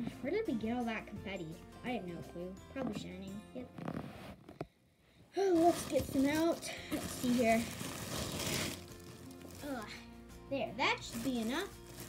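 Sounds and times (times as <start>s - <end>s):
plastic bag and paper rustling: 5.4s - 10.0s, 10.9s - 12.0s.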